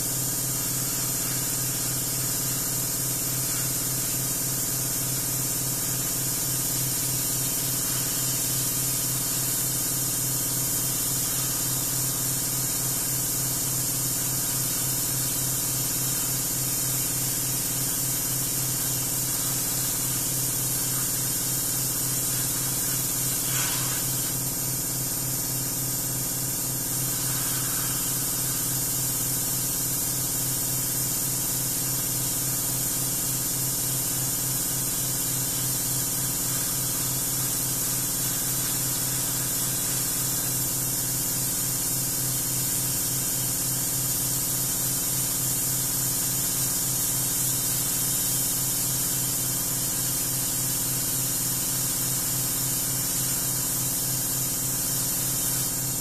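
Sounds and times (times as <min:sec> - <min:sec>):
airbrush hissing: 0:00.0 - 0:56.0.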